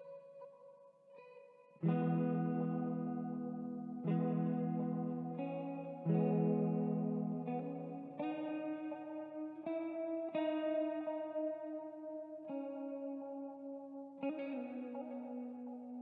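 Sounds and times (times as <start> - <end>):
ambient clean guitar: 0.0 - 16.0.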